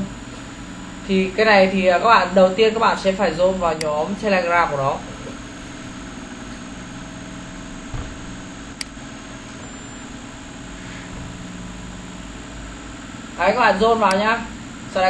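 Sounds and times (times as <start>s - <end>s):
low background hum: 0.0s - 15.0s
soft thump: 7.9s - 8.3s.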